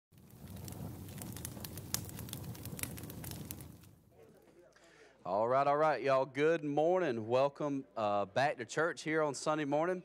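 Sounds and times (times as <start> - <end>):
crackling and rustling: 0.2 - 4.6.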